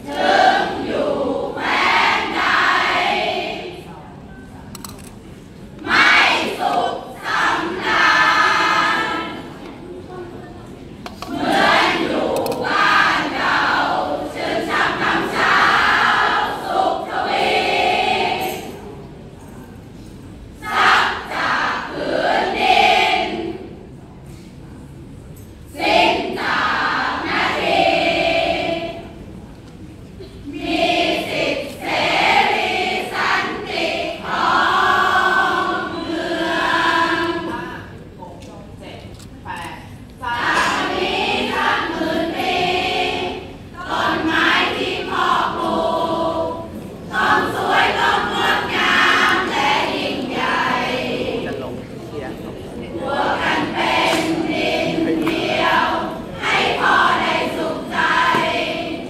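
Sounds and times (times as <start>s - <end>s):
group singing and chanting: 0.0s - 3.9s, 5.8s - 9.8s, 11.0s - 19.0s, 20.5s - 23.8s, 25.7s - 29.3s, 30.4s - 38.1s, 40.2s - 59.0s.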